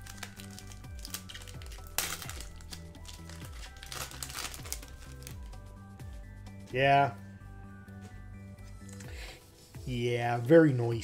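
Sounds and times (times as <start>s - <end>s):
foil wrapper crinkling: 0.0s - 5.5s
background music: 0.0s - 11.0s.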